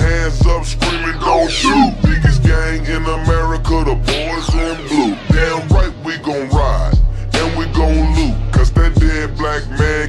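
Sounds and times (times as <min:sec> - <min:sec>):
heavy bass: 0:00.0 - 0:10.0
slowed rap vocals: 0:00.0 - 0:10.0.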